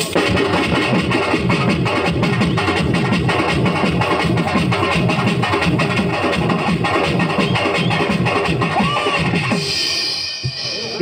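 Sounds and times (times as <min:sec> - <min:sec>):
dance music with fast drums: 0:00.0 - 0:11.0.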